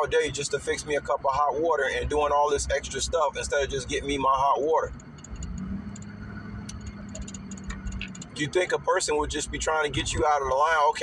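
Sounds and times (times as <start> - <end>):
car cabin rumble and hum: 0.0 - 11.0.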